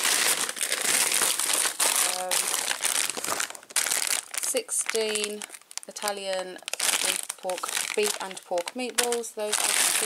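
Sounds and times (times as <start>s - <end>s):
plastic bag crinkling: 0.0s - 10.0s
plastic packaging rummaged: 0.0s - 10.0s.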